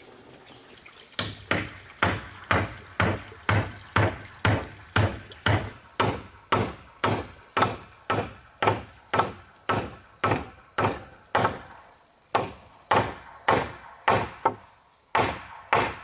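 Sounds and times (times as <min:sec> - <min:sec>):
hammer striking nail into wood: 0:01.2 - 0:11.6, 0:12.3 - 0:16.0.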